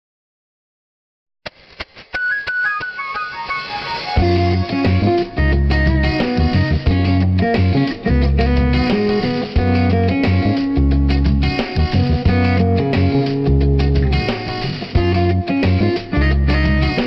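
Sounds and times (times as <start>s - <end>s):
plucked notes stepping down: 2.2s - 17.0s
bass line and accompaniment: 4.0s - 17.0s.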